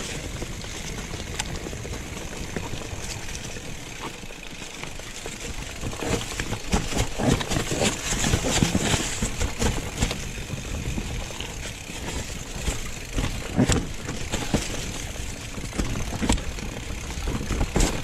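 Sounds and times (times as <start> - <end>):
bike knocking on rocks: 0.0 - 18.0
tyres rattling over leaves and stones: 0.0 - 18.0.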